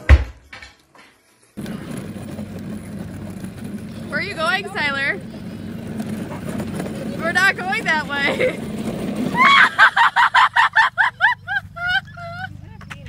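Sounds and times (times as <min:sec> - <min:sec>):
plastic wheels rolling over asphalt: 0:01.6 - 0:13.0.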